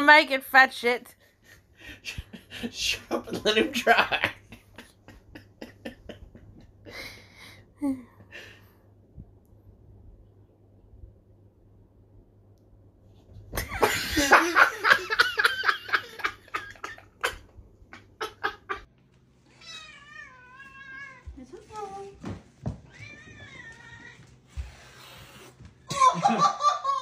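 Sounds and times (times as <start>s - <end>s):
loud laughter: 13.6s - 18.9s, 25.9s - 27.0s
cat meowing: 19.5s - 21.3s, 22.9s - 24.4s.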